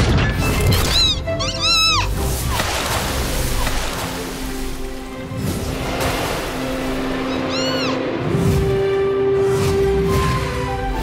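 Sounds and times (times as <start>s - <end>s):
cartoon soundtrack music: 0.0s - 11.0s
rushing splash-like noise: 2.2s - 10.5s.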